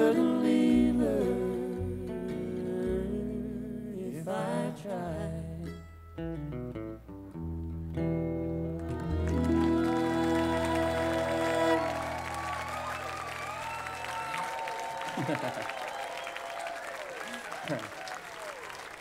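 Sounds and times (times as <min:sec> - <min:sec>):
acoustic bluegrass band playing: 0:00.0 - 0:13.2
audience applauding: 0:08.8 - 0:19.0
audience whooping: 0:08.8 - 0:19.0.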